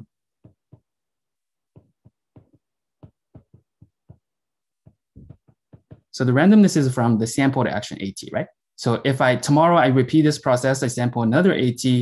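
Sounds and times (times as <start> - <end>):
stylus tapping on screen: 0.0 - 0.9, 1.8 - 6.2.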